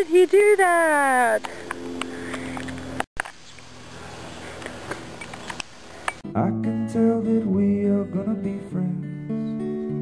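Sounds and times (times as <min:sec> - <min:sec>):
quiet outdoor background noise: 0:00.0 - 0:09.0.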